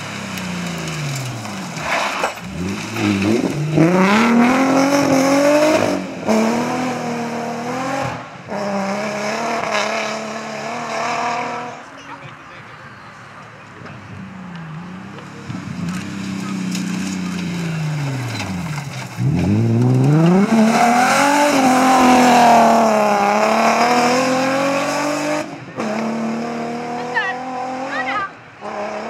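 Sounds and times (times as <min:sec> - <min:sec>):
rally car engine revving: 0:00.0 - 0:12.0, 0:13.9 - 0:29.0.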